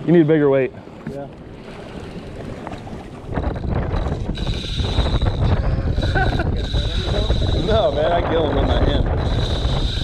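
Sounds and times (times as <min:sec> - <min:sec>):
wind buffeting microphone: 0:01.4 - 0:10.0
fishing reel whirring and ticking: 0:03.4 - 0:10.0.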